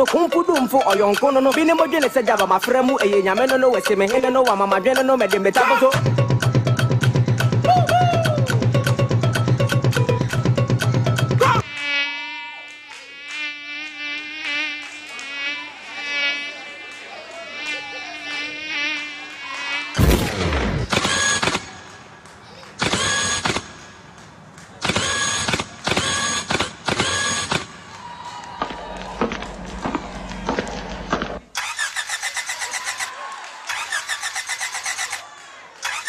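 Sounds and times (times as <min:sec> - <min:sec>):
drum beat: 0:02.3 - 0:11.6
wavering insect-like buzz: 0:09.7 - 0:21.4
sudden crash: 0:20.0 - 0:20.9.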